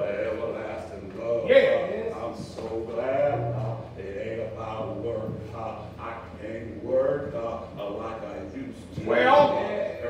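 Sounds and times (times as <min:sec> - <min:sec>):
man chanting a sermon: 0:00.0 - 0:10.0.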